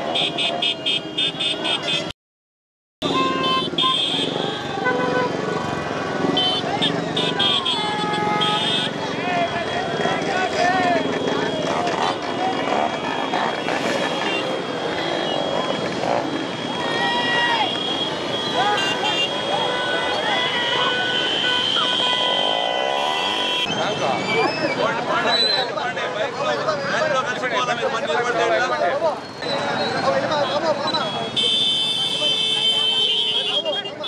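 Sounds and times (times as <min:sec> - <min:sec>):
horns tooting: 0:00.0 - 0:02.1, 0:03.0 - 0:26.0, 0:29.0 - 0:34.0
motorcycles and scooters running: 0:03.0 - 0:25.1.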